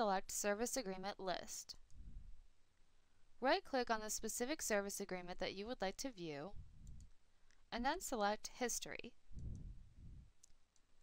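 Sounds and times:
soft low rumble: 0:06.5 - 0:07.1, 0:09.3 - 0:10.4
computer mouse clicks: 0:09.4 - 0:09.7.

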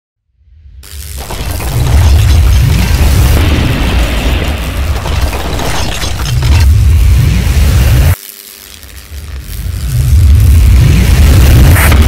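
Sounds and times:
sharp crackling burst: 0:00.8 - 0:12.0.

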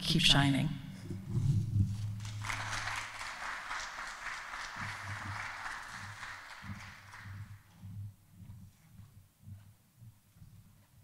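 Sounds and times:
footsteps on stage: 0:01.0 - 0:11.0
light applause: 0:02.2 - 0:07.7.

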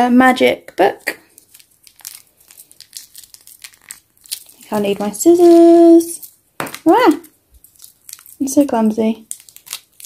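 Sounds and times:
plastic bag crinkling: 0:01.0 - 0:10.0.

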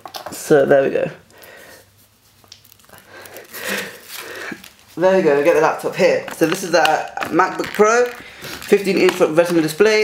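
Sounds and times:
plastic sheet papery rustle: 0:01.7 - 0:10.0.

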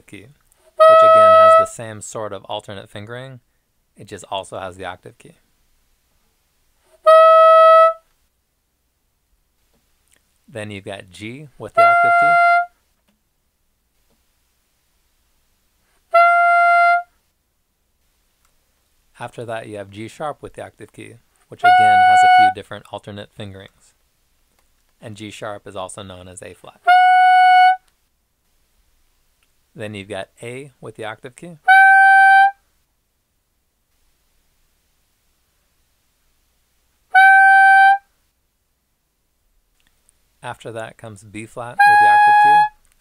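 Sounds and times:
soprano saxophone held note: 0:00.8 - 0:01.7, 0:11.8 - 0:12.7, 0:21.6 - 0:22.6.

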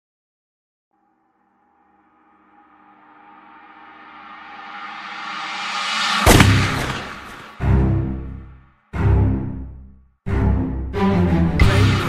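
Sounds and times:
sharp hit with ringing decay: 0:04.4 - 0:07.6.

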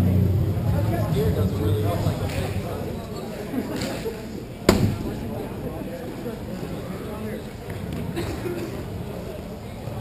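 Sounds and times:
murmur of players' voices: 0:00.0 - 0:10.0.

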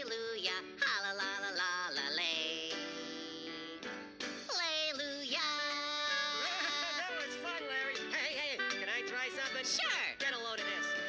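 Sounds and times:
cartoon voices singing: 0:00.0 - 0:03.9, 0:04.5 - 0:11.0
children's song music: 0:00.0 - 0:11.0.

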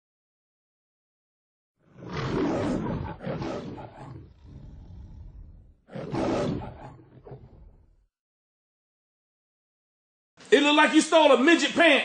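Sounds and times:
big cat roaring: 0:01.8 - 0:08.1.

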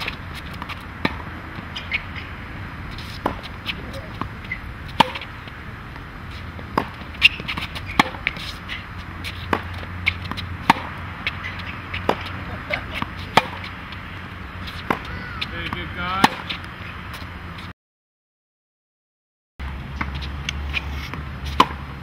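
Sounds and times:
tennis ball bouncing on hard court: 0:00.0 - 0:02.3, 0:03.0 - 0:16.8, 0:20.0 - 0:21.9
tennis ball struck by racket: 0:00.0 - 0:02.3, 0:03.0 - 0:16.8, 0:20.0 - 0:22.0.

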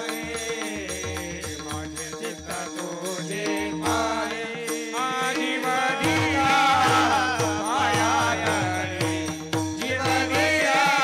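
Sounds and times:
man singing: 0:00.0 - 0:11.0
hand drum beat: 0:05.8 - 0:11.0.

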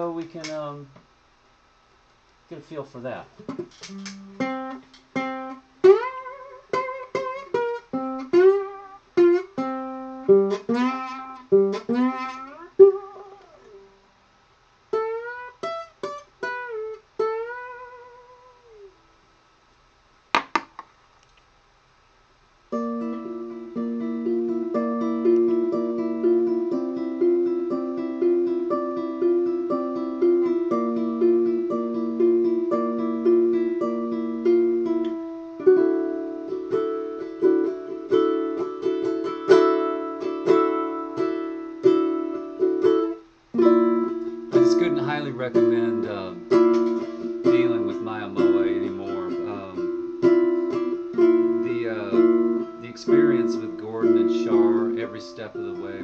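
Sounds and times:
amplified ukulele playing: 0:03.4 - 0:14.0, 0:14.9 - 0:19.0, 0:22.7 - 0:56.0.

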